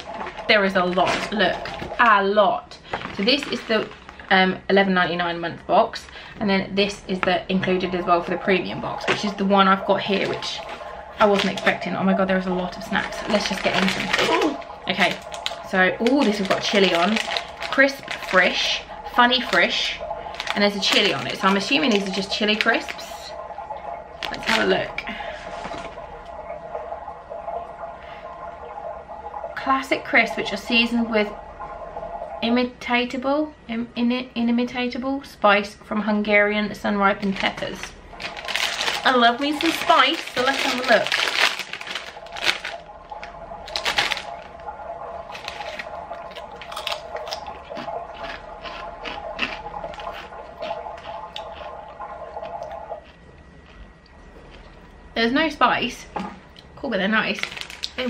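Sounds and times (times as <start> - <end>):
baby monitor bubbling: 0.0 - 58.0
foil crisp packet crinkling: 2.8 - 4.3, 10.1 - 11.8, 12.7 - 23.2, 37.3 - 42.8, 43.7 - 44.5, 45.3 - 50.8, 57.3 - 58.0
crisps crunching in mouth: 12.7 - 23.2, 37.4 - 44.5, 45.3 - 54.7, 57.4 - 58.0.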